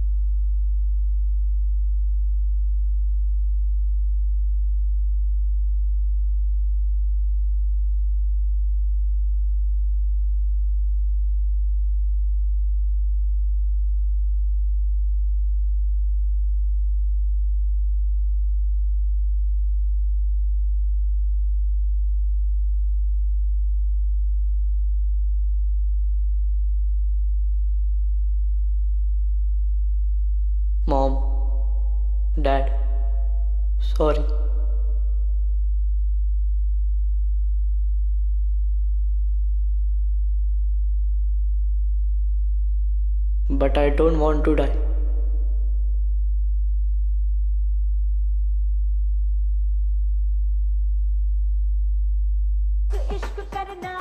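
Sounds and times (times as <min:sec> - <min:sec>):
steady deep hum: 0:00.0 - 0:54.0.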